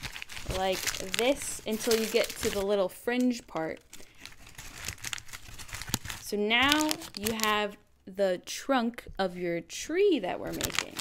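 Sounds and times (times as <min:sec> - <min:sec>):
paper bag crinkling: 0:00.0 - 0:02.9, 0:03.5 - 0:07.6, 0:10.4 - 0:11.0.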